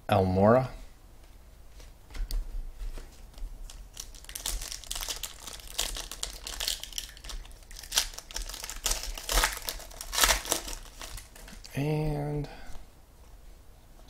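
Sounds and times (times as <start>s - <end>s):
foil wrapper tearing and crinkling: 3.7s - 11.6s.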